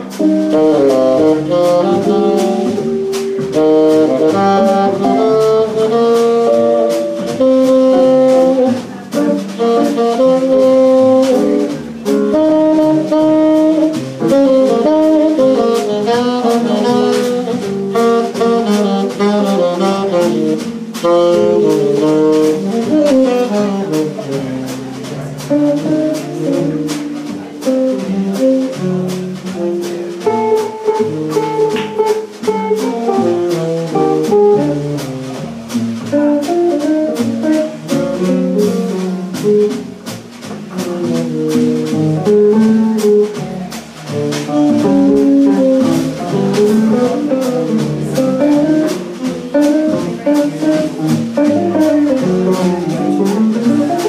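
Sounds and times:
bass: 0.0s - 54.0s
drum kit with cymbals: 0.0s - 54.0s
jazz guitar: 0.0s - 54.0s
tenor saxophone: 0.2s - 24.8s.

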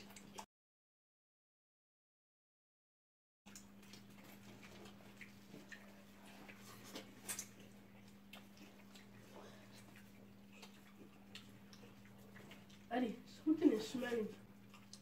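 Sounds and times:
lip smacks and chewing: 0.0s - 0.5s, 3.5s - 15.0s
steady low hum: 3.5s - 15.0s.

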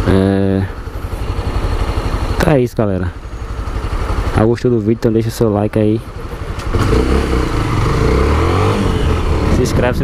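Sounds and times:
motorcycle engine accelerating: 0.0s - 10.0s.

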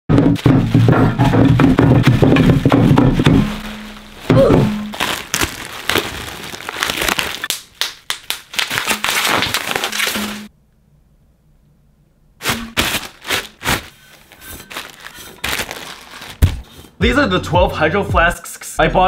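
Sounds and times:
plastic and bubble wrap crinkling: 0.2s - 10.5s, 12.4s - 16.9s.

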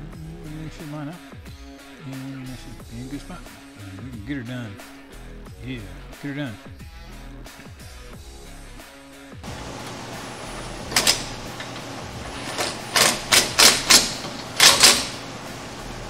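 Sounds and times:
background music: 0.0s - 16.0s
pneumatic wrench bursts: 9.4s - 16.0s.

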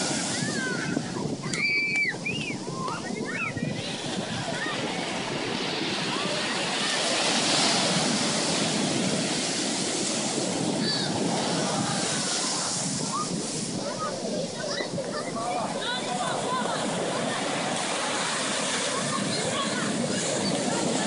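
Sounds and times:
surf washing in and out: 0.0s - 21.0s.

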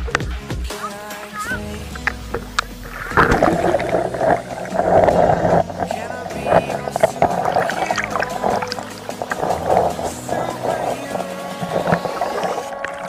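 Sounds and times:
background music: 0.0s - 13.0s
water churning and splashing: 0.0s - 13.0s.

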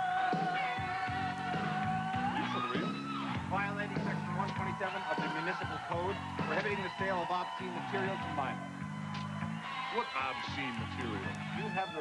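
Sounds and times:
voices shouting and yelling: 2.4s - 12.0s.

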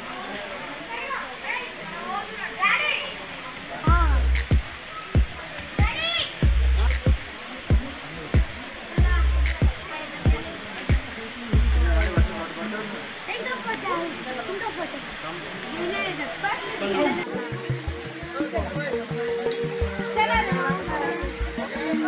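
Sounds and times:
crowd voices: 0.0s - 22.0s
falling water rushing: 0.0s - 22.0s
deep bass drum hit: 3.9s - 9.8s, 11.6s - 12.3s
sharp drum strokes: 3.9s - 12.6s.

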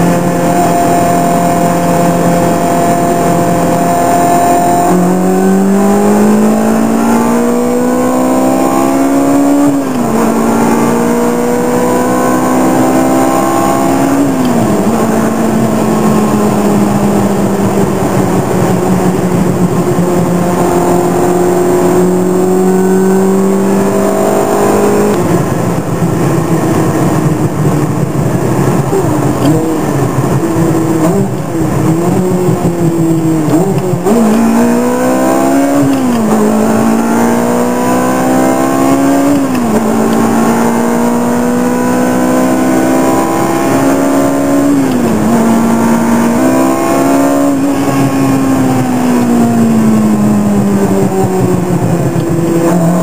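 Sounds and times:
sports car engine revving: 0.0s - 53.0s.

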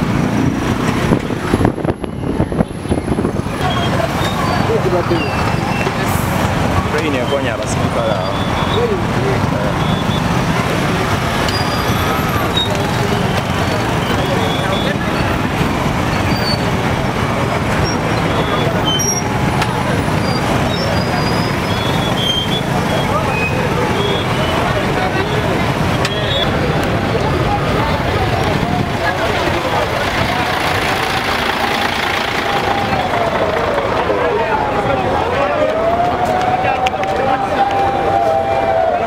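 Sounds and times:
crowd voices: 0.0s - 39.0s
motorcycle and vehicle traffic: 0.0s - 39.0s.

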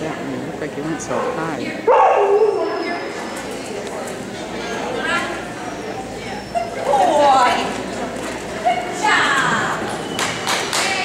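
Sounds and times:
dog barking excitedly: 1.2s - 2.6s.

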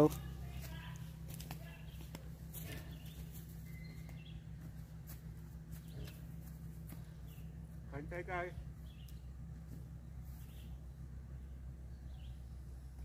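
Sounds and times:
faint bird chirps: 1.6s - 4.5s.

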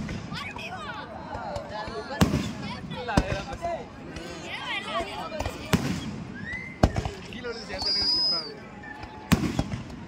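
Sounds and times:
firework bangs: 1.4s - 3.7s, 5.0s - 8.2s, 9.0s - 10.0s
fireworks crackle and hiss: 4.5s - 8.5s, 9.3s - 10.0s.

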